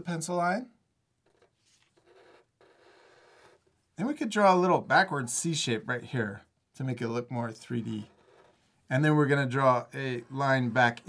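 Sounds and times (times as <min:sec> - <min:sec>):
marker scratching on paper: 0:01.4 - 0:03.8, 0:08.1 - 0:08.8.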